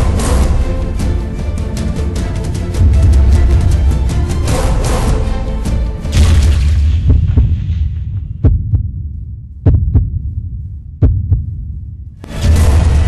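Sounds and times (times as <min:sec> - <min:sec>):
low drone: 0:00.0 - 0:13.0
heartbeat double thumps: 0:05.8 - 0:13.0.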